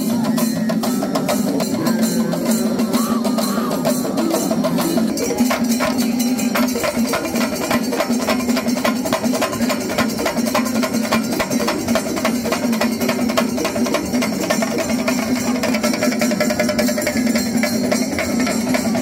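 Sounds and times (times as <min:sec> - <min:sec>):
drummers beating drums rapidly: 0:00.0 - 0:19.0.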